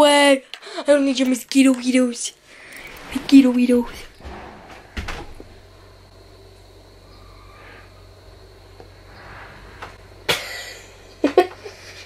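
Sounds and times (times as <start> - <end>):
low hum: 2.4 - 12.0.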